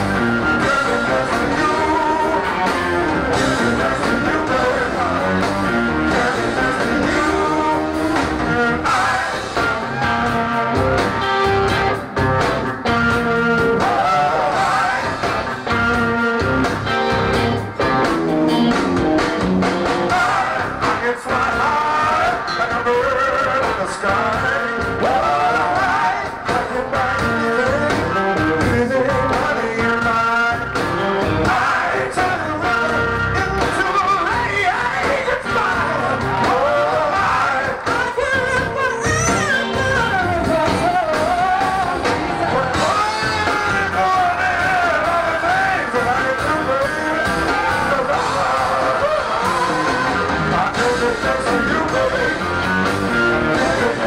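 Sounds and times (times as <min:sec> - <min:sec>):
bass guitar: 0:00.0 - 0:54.0
drums: 0:00.0 - 0:54.0
electric guitar: 0:00.0 - 0:54.0
soul-funk band playing: 0:00.0 - 0:54.0.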